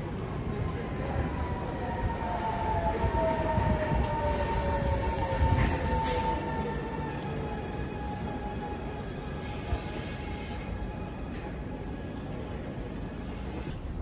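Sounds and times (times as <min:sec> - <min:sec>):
train wheels rumbling: 0:00.0 - 0:14.0.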